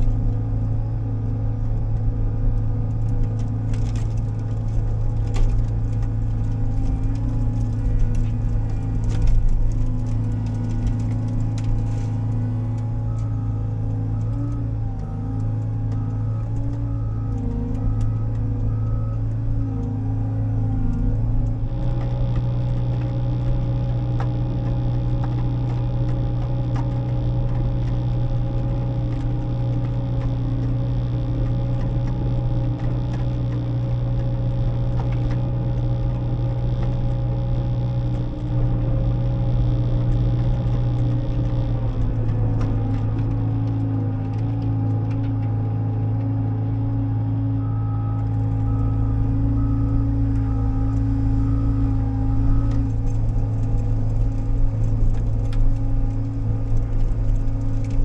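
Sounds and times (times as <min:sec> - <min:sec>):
diesel engine running under load: 0:00.0 - 0:58.0
high whine: 0:00.0 - 0:58.0
short beeps: 0:47.5 - 0:52.8.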